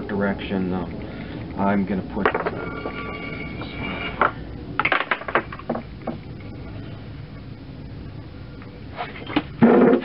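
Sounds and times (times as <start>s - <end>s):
steady high whine: 0.0s - 10.0s.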